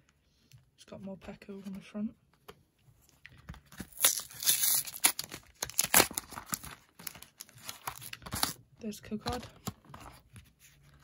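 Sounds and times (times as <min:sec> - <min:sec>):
cardboard tearing: 0:03.8 - 0:08.6.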